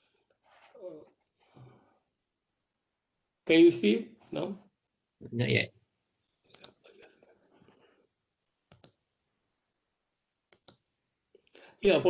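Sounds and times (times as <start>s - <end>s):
computer mouse clicks: 6.5s - 6.8s, 8.7s - 9.0s, 10.5s - 10.9s.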